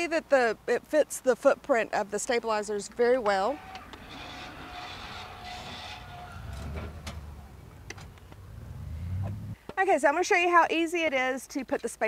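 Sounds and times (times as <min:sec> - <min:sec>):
low motor rumble: 0:03.6 - 0:09.6.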